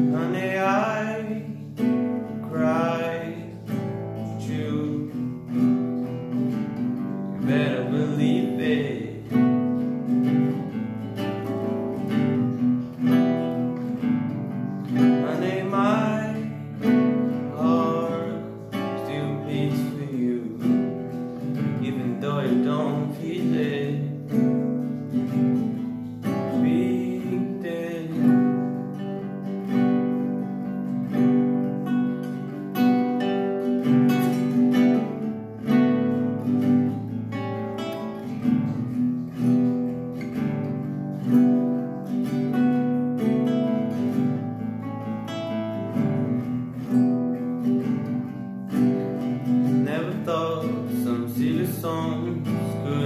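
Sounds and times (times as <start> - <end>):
acoustic guitar chords: 0.0 - 53.0.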